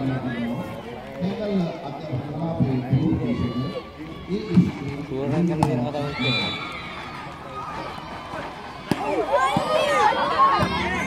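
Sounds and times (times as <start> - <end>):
low crowd murmur: 0.0 - 11.0
people talking and calling out: 0.0 - 11.0.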